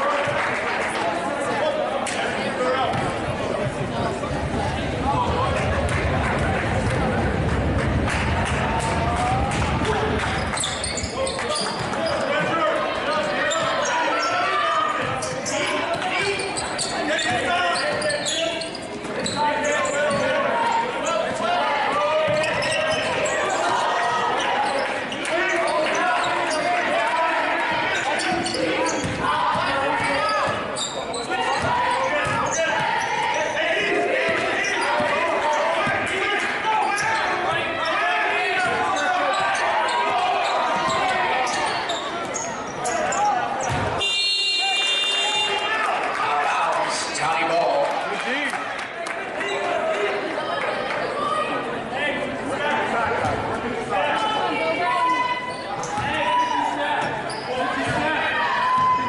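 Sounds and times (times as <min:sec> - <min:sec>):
echoing voices in a hall: 0:00.0 - 0:59.0
sneakers squeaking on floor: 0:10.3 - 0:26.8, 0:27.8 - 0:36.1, 0:36.8 - 0:45.5, 0:55.1 - 0:59.0.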